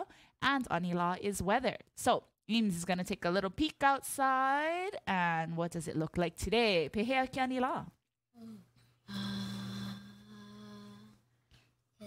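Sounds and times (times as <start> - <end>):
person singing long note: 9.1 - 11.2.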